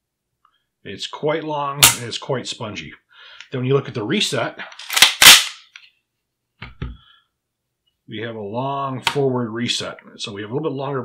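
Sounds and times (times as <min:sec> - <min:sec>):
pistol slide metallic clacks: 0:04.7 - 0:05.8.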